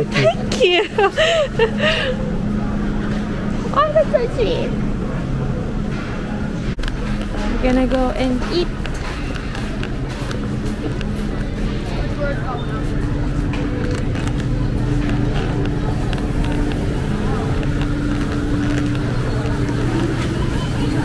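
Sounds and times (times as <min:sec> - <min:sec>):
indistinct voices: 0:00.0 - 0:21.0
steady low hum with held tones: 0:00.0 - 0:21.0.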